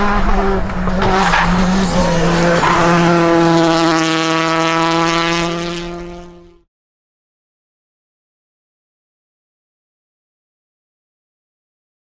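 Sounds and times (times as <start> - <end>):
rally car engine running: 0.0 - 6.6.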